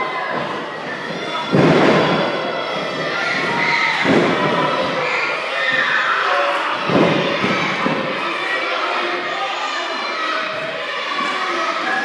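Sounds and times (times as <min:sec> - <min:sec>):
crowd chatter and calls: 0:00.0 - 0:12.0.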